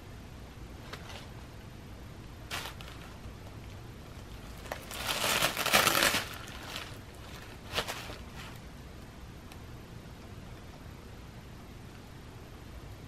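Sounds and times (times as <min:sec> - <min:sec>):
packing paper crinkling: 0:02.5 - 0:08.6.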